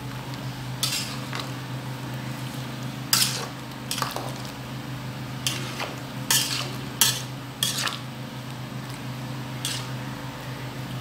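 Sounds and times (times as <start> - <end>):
steady low hum: 0.0 - 11.0
metal spatula scraping metal pot: 5.4 - 8.0.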